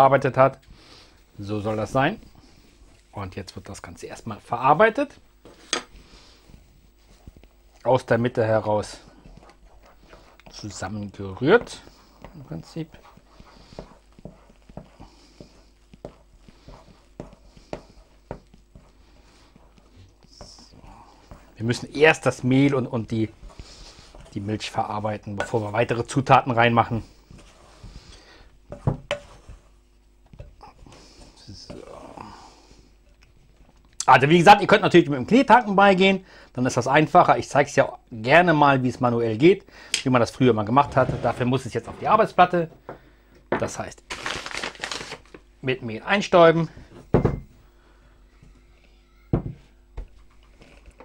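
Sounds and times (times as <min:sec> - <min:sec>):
spoon scraping dough in a bowl: 0:08.3 - 0:31.8.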